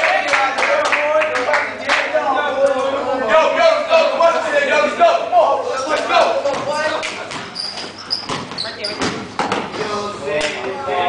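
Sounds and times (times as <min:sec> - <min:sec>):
short high squeaks: 0:07.5 - 0:09.0.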